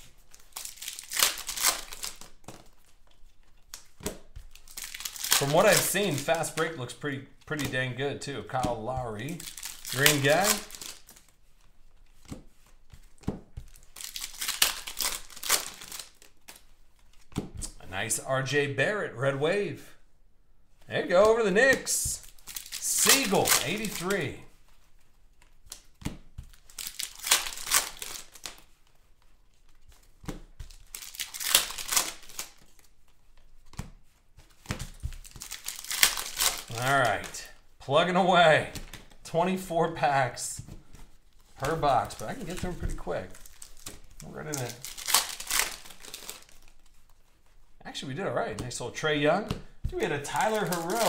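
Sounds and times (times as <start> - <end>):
foil wrapper crinkling: 0.0 - 6.8, 8.6 - 12.2, 13.0 - 17.2, 21.0 - 33.6, 34.4 - 37.7, 41.0 - 47.6, 49.9 - 51.0.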